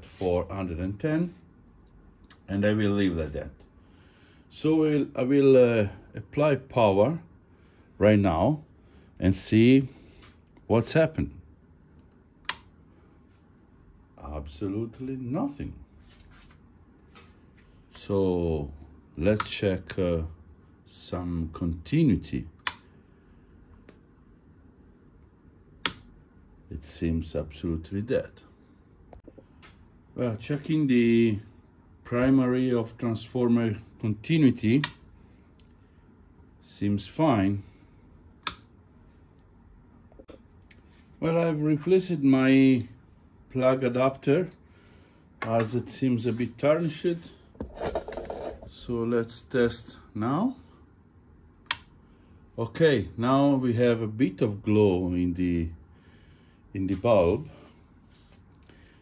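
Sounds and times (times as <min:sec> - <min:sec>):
toggle power switch click: 0:12.4 - 0:12.8, 0:22.6 - 0:22.9, 0:25.8 - 0:26.2, 0:38.4 - 0:38.7, 0:51.6 - 0:51.9.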